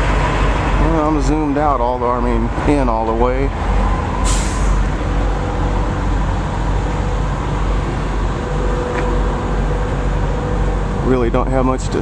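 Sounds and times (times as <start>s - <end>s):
diesel truck idling: 0.0s - 12.0s
air brake hiss: 4.2s - 4.8s.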